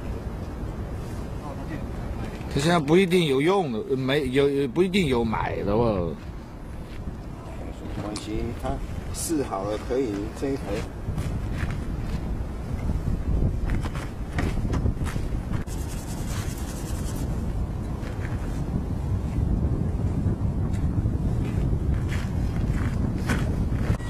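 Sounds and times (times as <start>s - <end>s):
wind noise on microphone: 0.0s - 24.0s.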